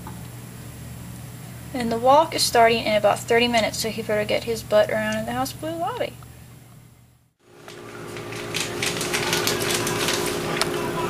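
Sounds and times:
elevator car hum: 7.5 - 11.0.

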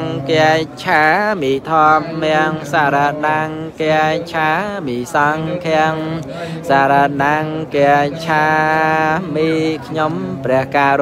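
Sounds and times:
person chanting melodically: 0.0 - 11.0.

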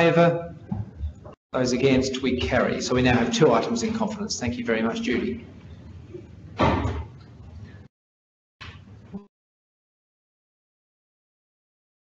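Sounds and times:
door shutting with heavy thud: 6.6 - 7.1.

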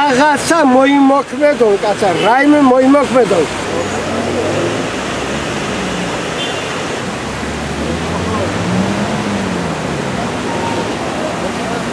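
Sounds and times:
faint voices talking: 0.0 - 6.4, 7.6 - 11.9
street traffic noise: 0.0 - 11.9.

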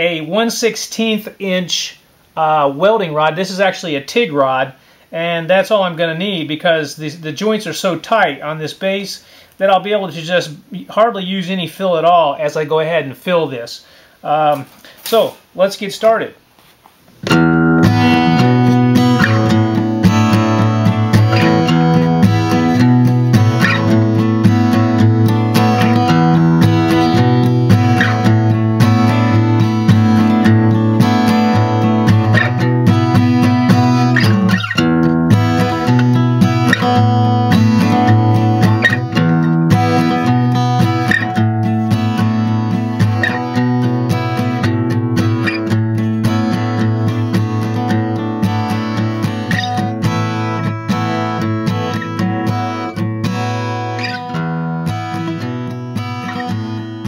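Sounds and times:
acoustic guitar music: 0.0 - 13.6, 17.1 - 57.0.

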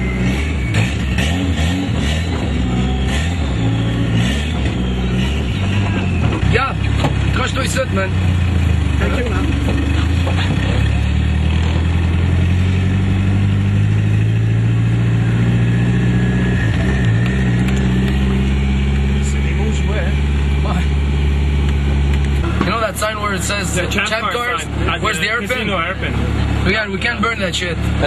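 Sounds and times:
car engine idling: 0.0 - 28.0.

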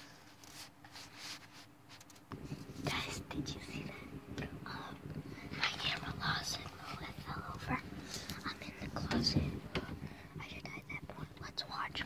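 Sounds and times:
person whispering: 2.8 - 12.0.

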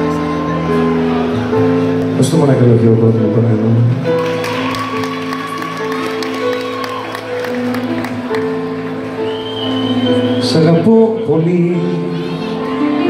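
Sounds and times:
crowd noise in a club: 0.0 - 13.0
live band playing held chords: 0.0 - 13.0.

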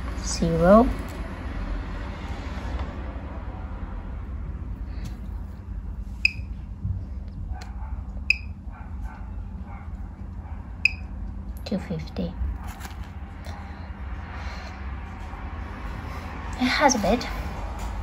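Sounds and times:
geiger counter ticking: 8.3 - 8.5.

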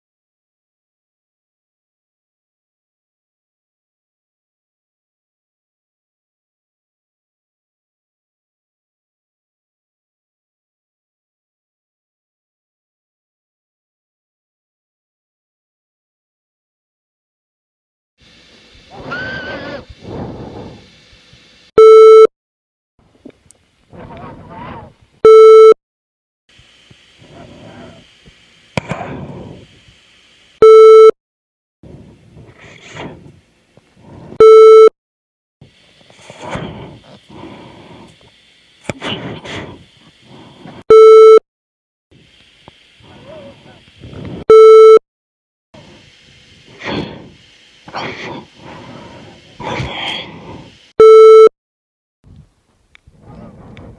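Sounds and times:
hiss: 18.2 - 21.6, 26.5 - 30.6, 31.9 - 34.4, 35.6 - 40.8, 42.2 - 44.4, 45.8 - 51.0
muffled voices: 23.9 - 25.0, 27.2 - 28.2, 43.0 - 44.3.

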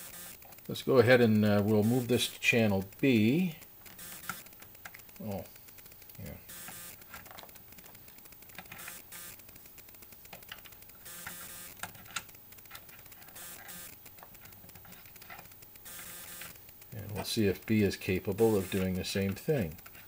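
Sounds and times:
test leads clicking and rustling: 0.3 - 20.0.

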